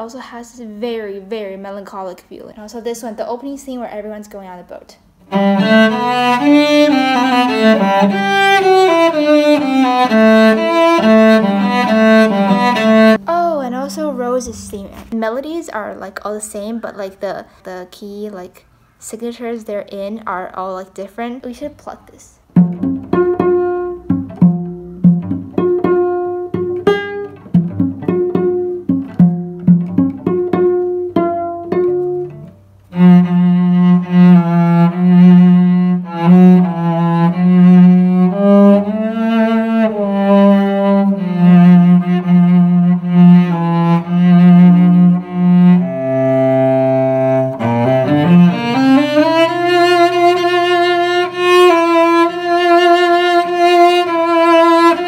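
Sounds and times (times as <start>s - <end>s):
bowed cello notes: 5.2s - 15.2s, 22.5s - 55.0s
cello pizzicato notes: 5.2s - 15.3s, 22.4s - 55.0s.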